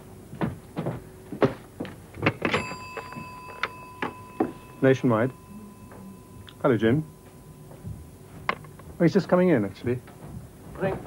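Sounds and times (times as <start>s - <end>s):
faint steady high tone: 2.5s - 8.7s.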